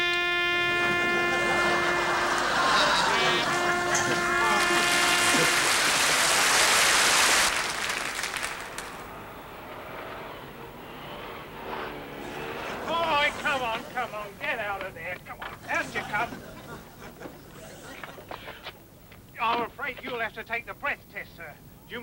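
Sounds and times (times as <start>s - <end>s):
brass instrument long note: 0.0s - 10.1s
outdoor street noise: 0.0s - 22.0s
audience applause: 0.8s - 9.1s.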